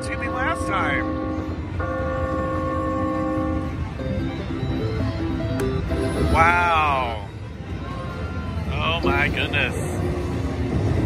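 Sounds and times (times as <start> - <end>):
held electronic chord: 0.0 - 6.8
low casino rumble: 0.0 - 11.0.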